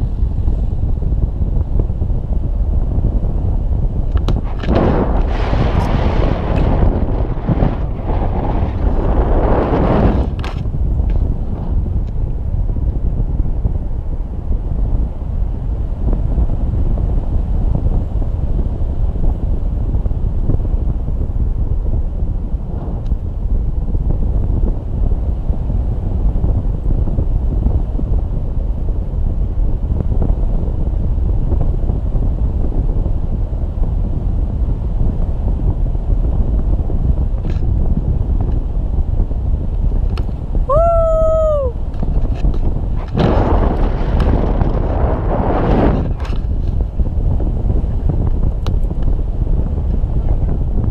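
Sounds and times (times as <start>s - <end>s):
wind rushing over microphone: 0.0s - 50.9s
person whooping: 40.7s - 41.8s.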